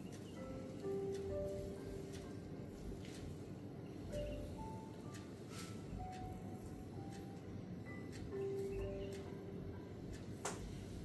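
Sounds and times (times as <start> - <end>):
soft slow background music: 0.0 - 11.0.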